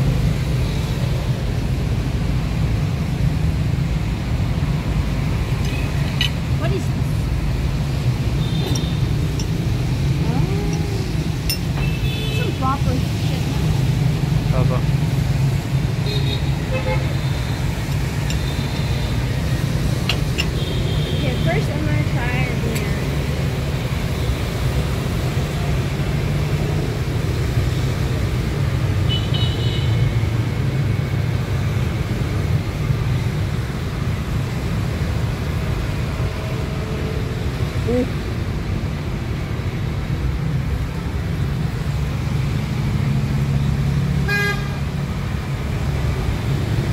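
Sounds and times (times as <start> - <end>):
street traffic drone: 0.0 - 46.9
vehicle horn toots: 44.3 - 44.8.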